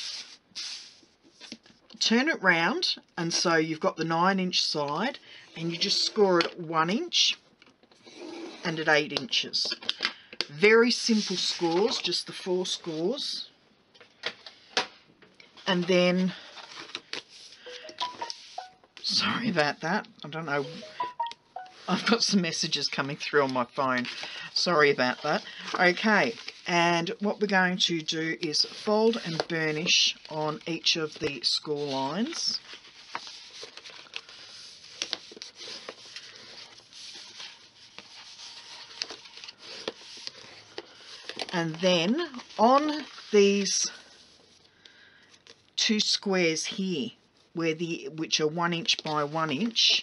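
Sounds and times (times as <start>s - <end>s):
phone alert beeps: 17.7s - 18.8s, 20.6s - 22.0s.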